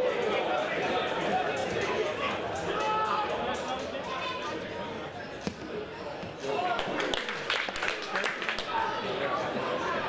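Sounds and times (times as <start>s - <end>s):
players shouting and chatting: 0.0s - 10.0s.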